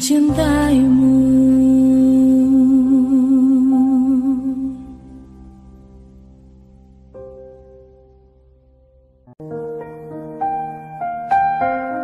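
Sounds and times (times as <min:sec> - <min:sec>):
soft pop ballad accompaniment: 0:00.0 - 0:12.0.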